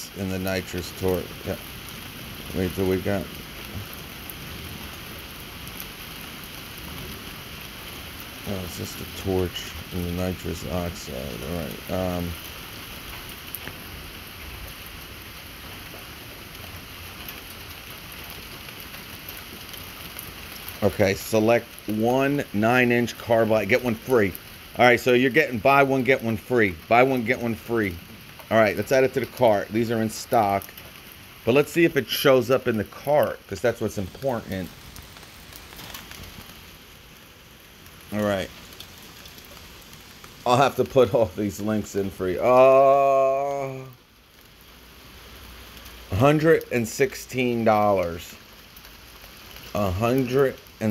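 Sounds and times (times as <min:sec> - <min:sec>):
steady hiss: 0:00.0 - 0:50.9.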